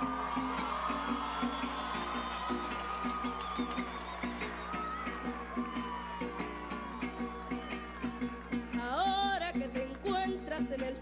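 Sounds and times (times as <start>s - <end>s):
cuatro strummed: 0.0s - 11.0s.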